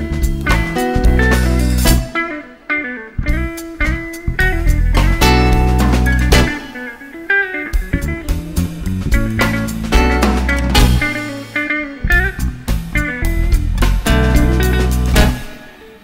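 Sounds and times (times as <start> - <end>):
bass guitar: 0.0 - 15.6
drums: 0.0 - 16.0
guitars plucking quick lines: 0.0 - 16.0.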